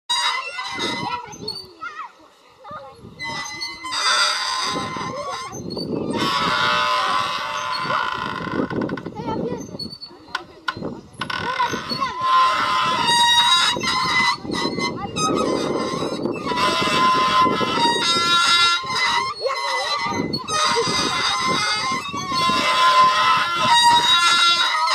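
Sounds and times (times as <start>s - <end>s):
merry-go-round squealing: 0.1s - 24.9s.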